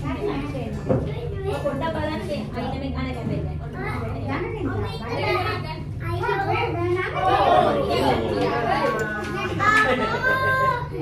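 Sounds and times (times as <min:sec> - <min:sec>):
adults and children talking: 0:00.0 - 0:11.0.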